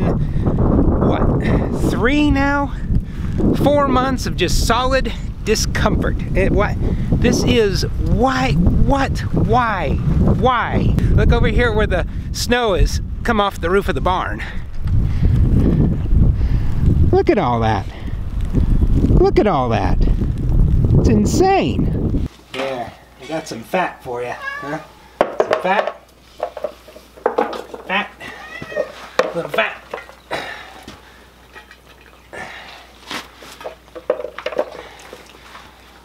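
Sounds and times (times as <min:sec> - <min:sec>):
wind buffeting microphone: 0:00.0 - 0:22.3.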